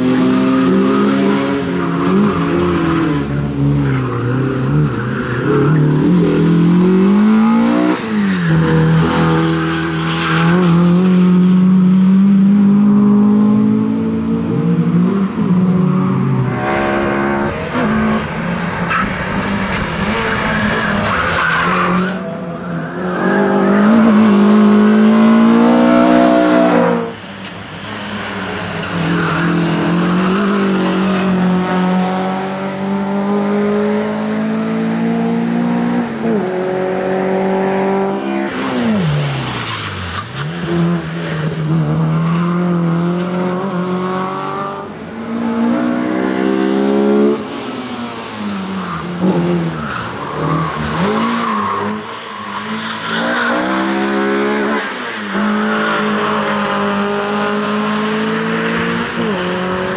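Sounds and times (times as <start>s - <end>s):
race car engine revving: 23.2s - 27.2s, 49.0s - 59.9s.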